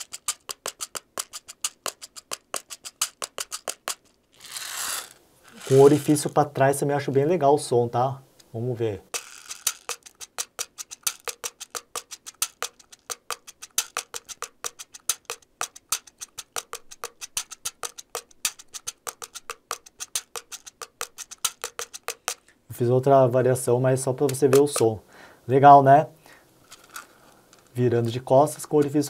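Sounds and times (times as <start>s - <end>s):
fingers tapping small wooden cajon: 0.0s - 4.1s, 9.1s - 22.4s, 24.1s - 25.0s, 27.6s - 29.0s.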